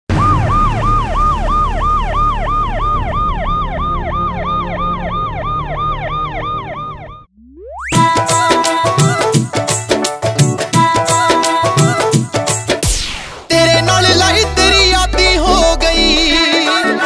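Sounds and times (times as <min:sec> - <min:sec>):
ambulance siren yelping: 0:00.1 - 0:08.1
rising tone sweep: 0:00.1 - 0:08.1.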